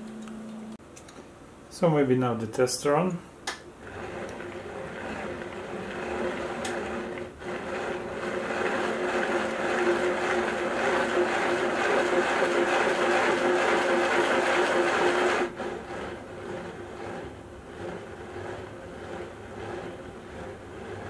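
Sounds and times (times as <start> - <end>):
gearbox whirring hum: 3.4 - 21.0.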